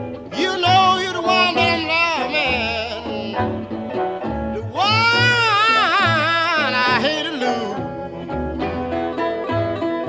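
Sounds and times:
bending lead guitar line: 0.0 - 10.0
plucked bass line: 0.0 - 10.0.

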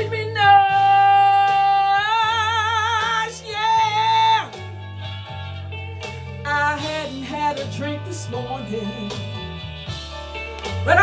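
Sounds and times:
backing track with bass line: 0.0 - 11.0.

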